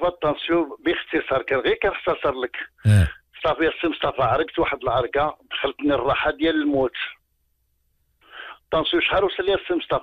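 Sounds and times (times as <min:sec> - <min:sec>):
man talking over telephone: 0:02.9 - 0:03.1.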